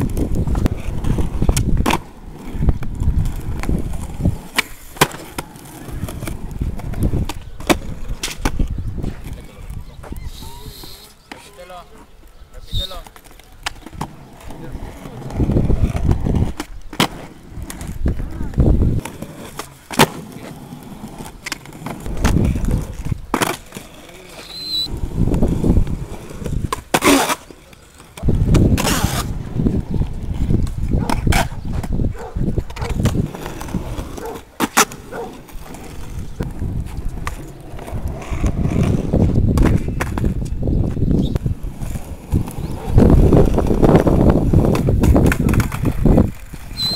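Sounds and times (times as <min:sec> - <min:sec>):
skateboard tail popping and landing: 0:00.0 - 0:10.2, 0:13.0 - 0:46.9
skateboard wheels rolling on concrete: 0:00.0 - 0:46.9.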